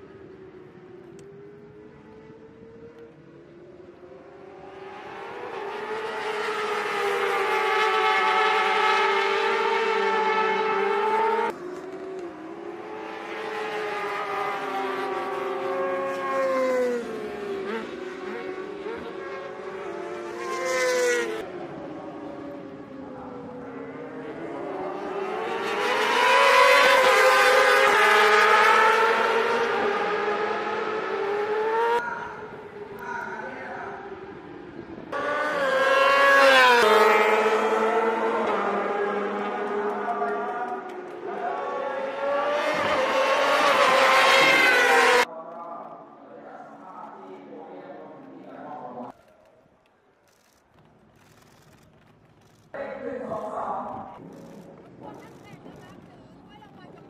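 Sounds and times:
racing motorcycles passing: 0.0s - 45.4s.

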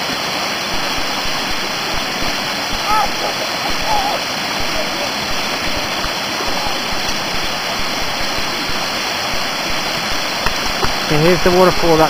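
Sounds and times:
cascading stream: 0.0s - 12.0s
waterfall rushing: 0.0s - 12.0s.

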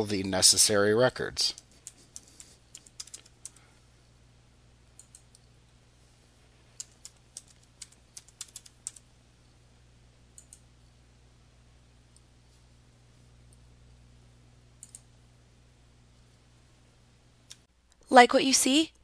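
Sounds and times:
faint computer keyboard keystrokes: 1.6s - 3.7s, 5.0s - 5.5s, 6.8s - 9.0s, 10.4s - 10.7s, 14.8s - 15.1s.

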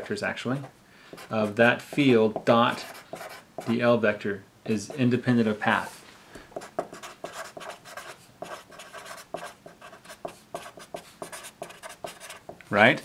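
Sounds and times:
marker writing on paper: 0.6s - 3.8s, 6.6s - 12.6s.

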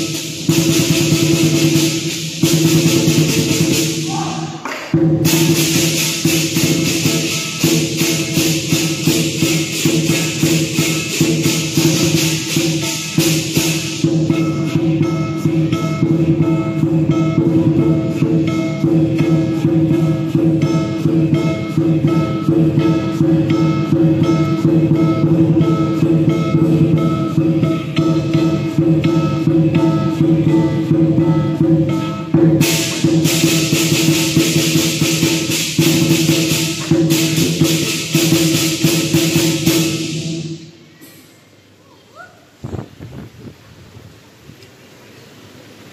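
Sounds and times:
big drum beating: 0.0s - 40.8s
cymbals and gong ringing: 0.0s - 41.5s.

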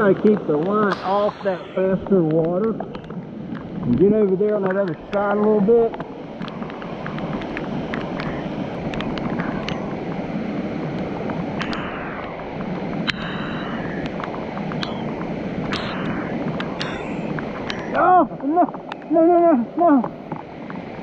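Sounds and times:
light sharp ticks: 0.0s - 9.8s, 12.6s - 18.0s
stream rushing over riffles: 0.0s - 21.0s.

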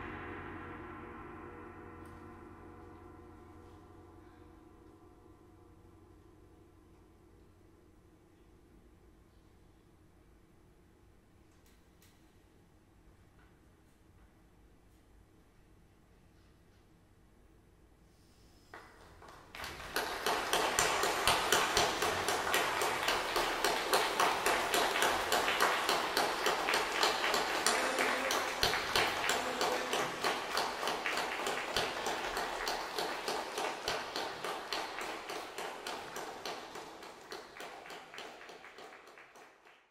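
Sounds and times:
audience applauding: 18.8s - 39.9s.

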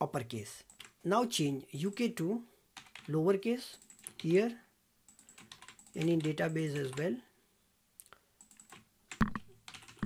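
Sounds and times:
computer keyboard clicks: 0.6s - 1.0s, 2.8s - 3.1s, 3.8s - 4.3s, 5.1s - 7.1s, 8.4s - 10.0s.

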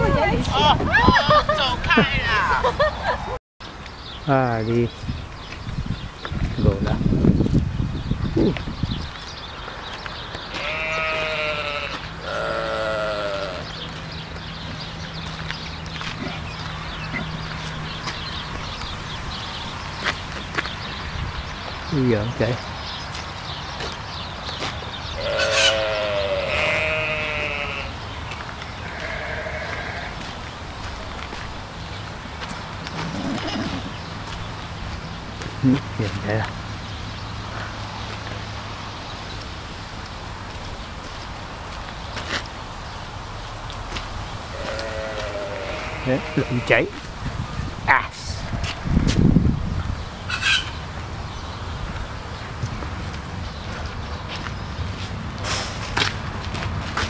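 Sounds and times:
livestock bleating: 10.5s - 13.7s, 25.2s - 28.0s, 28.8s - 30.3s, 44.5s - 47.0s
fowl-like bird squawk: 25.3s - 26.8s, 50.3s - 50.8s.

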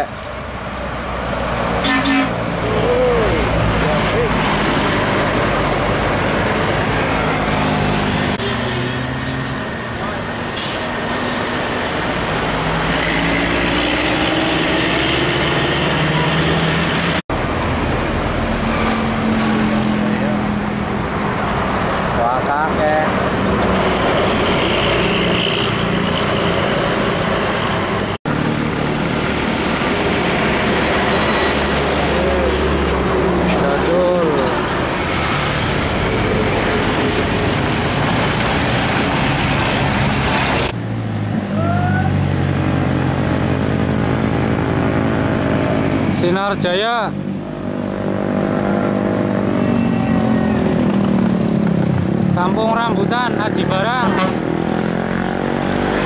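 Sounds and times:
buses and truck driving past: 0.0s - 56.0s
road noise: 0.0s - 56.0s.

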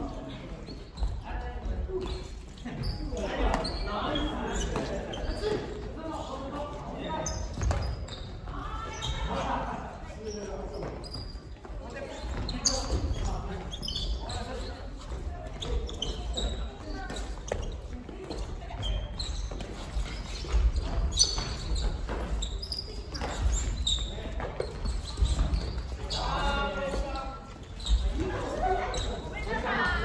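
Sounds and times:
players' voices: 0.0s - 30.0s.

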